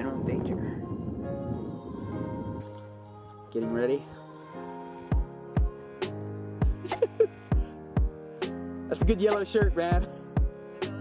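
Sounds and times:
background music with held notes: 0.0s - 11.0s.

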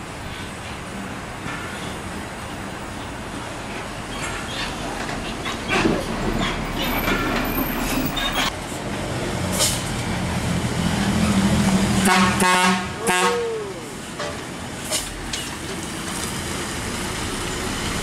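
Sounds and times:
heavy diesel trucks: 0.0s - 18.0s.

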